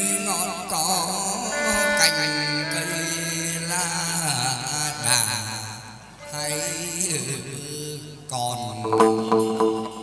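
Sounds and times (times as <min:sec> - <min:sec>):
person chanting: 0:00.0 - 0:10.0
string accompaniment: 0:00.0 - 0:10.0.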